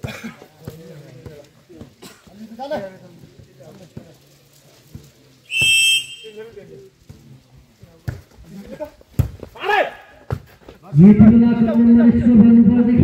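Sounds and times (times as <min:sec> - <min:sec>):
players and spectators voices: 0:00.0 - 0:13.0
referee's whistle blast: 0:05.5 - 0:06.5.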